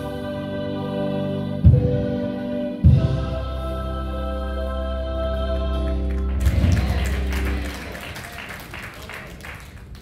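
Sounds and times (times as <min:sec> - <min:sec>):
congregation applauding: 0:06.1 - 0:10.0.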